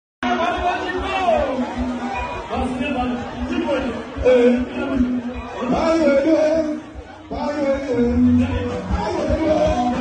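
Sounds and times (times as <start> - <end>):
voices chattering: 0.2 - 10.0.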